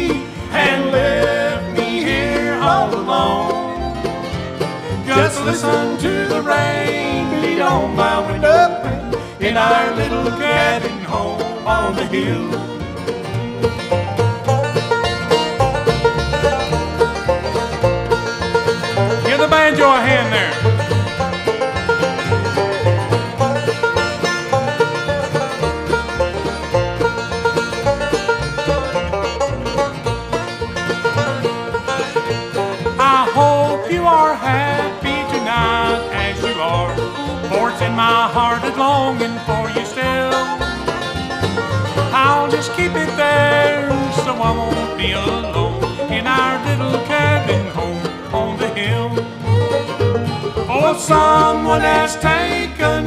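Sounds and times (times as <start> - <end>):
banjo fast picked notes: 0.0 - 53.0
bluegrass band playing: 0.0 - 53.0
guitar: 0.0 - 53.0
upright bass: 0.0 - 53.0.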